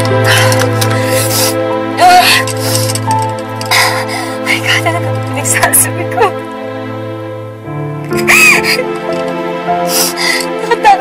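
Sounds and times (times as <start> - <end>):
slow music with held tones: 0.0 - 11.0.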